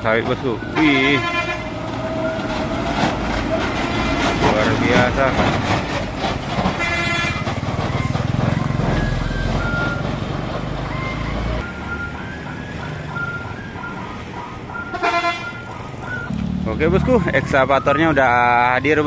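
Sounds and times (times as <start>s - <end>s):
truck diesel engine rumbling: 0.0s - 19.0s
vehicle horn toots: 0.6s - 1.8s, 3.8s - 5.0s, 6.8s - 7.5s, 14.8s - 15.7s.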